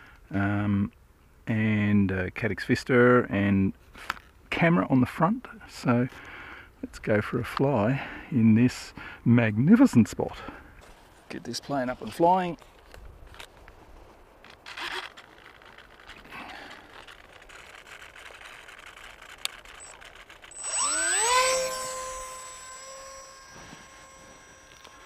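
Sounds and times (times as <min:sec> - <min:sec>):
model plane motor whine: 0:14.7 - 0:25.0.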